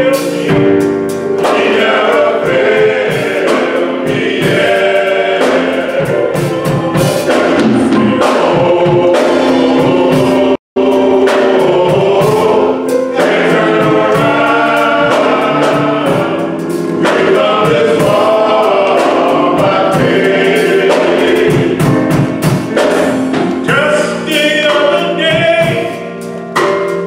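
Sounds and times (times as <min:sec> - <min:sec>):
drums: 0:00.0 - 0:27.0
men's chorus singing gospel: 0:00.0 - 0:27.0.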